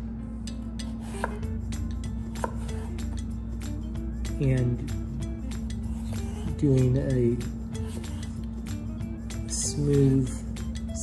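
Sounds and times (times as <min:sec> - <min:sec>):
knife slicing potato: 0:00.5 - 0:03.3, 0:04.5 - 0:08.8.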